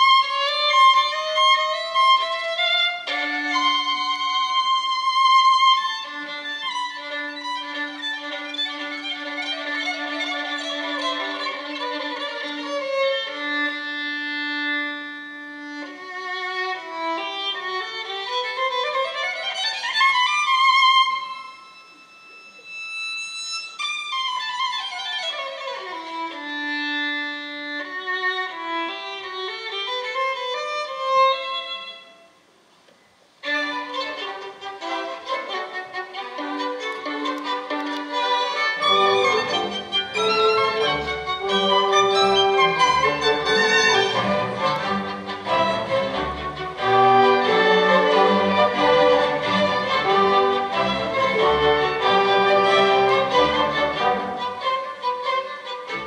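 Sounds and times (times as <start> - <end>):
solo violin: 0.0 - 56.0.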